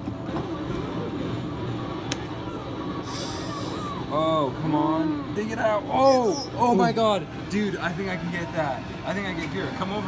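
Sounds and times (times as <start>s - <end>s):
arcade background noise: 0.0s - 10.0s
faint machine music: 0.0s - 10.0s.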